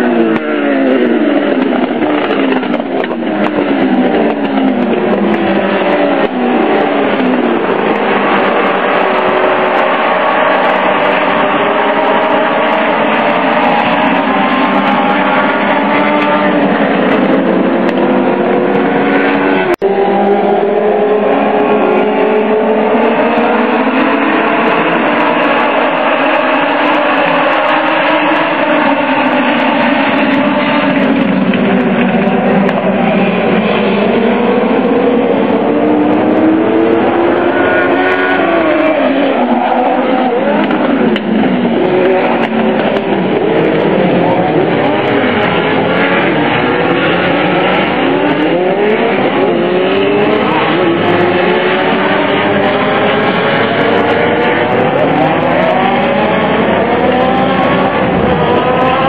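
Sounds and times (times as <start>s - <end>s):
race car engines passing: 0.0s - 59.0s.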